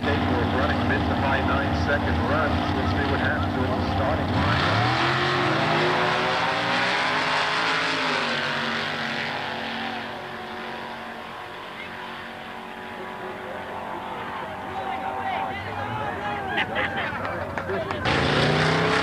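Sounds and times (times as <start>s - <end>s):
drag race cars launching: 0.0s - 19.0s.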